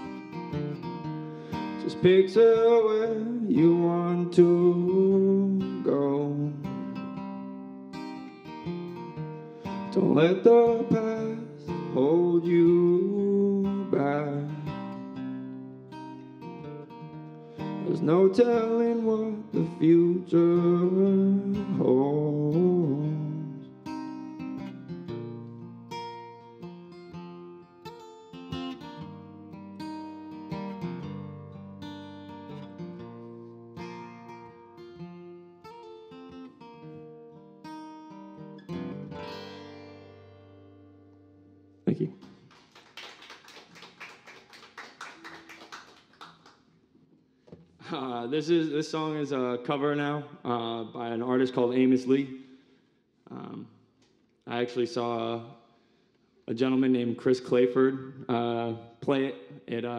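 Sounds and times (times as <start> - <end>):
acoustic guitar: 0.0 - 59.9
man singing: 1.7 - 6.9, 9.8 - 14.9, 17.8 - 23.7, 47.9 - 52.4, 56.5 - 59.9.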